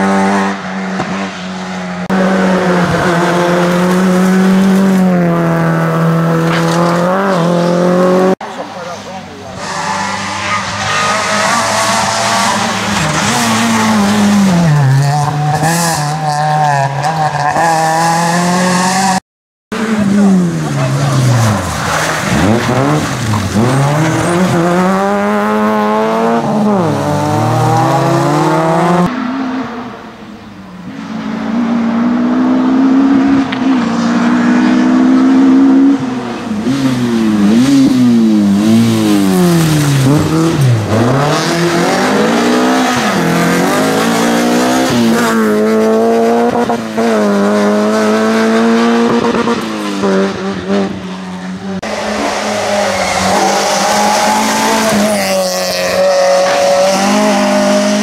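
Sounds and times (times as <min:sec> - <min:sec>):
rally car engines revving hard: 0:00.0 - 0:30.0, 0:30.8 - 0:58.0.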